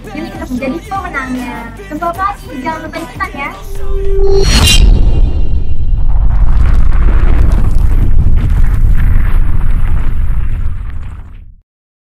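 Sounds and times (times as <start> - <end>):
deep cinematic explosion rumble: 3.7 - 11.6.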